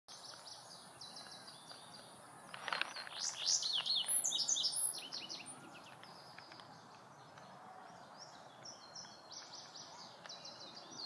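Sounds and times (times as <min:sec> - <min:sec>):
bird song of sweeping notes: 0:00.1 - 0:11.0
faint high bird chirps: 0:00.1 - 0:11.0.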